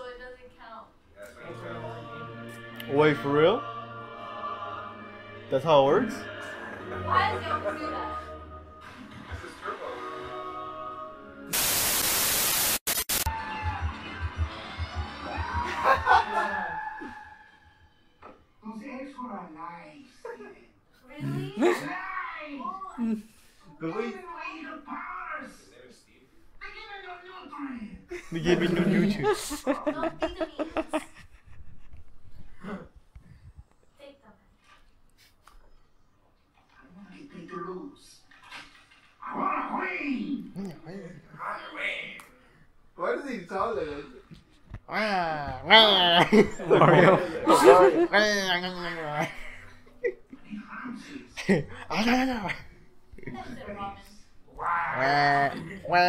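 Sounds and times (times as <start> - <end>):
tv static hiss: 11.5 - 13.3.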